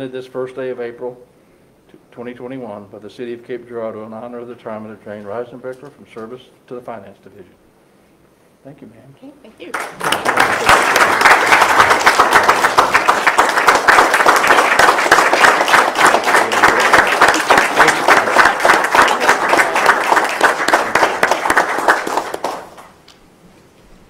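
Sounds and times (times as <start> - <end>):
small group applauding: 9.7 - 23.1.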